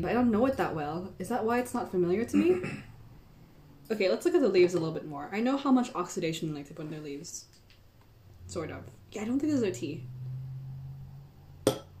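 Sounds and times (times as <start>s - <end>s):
ceramic spoon clinking bowl: 11.7s - 12.0s.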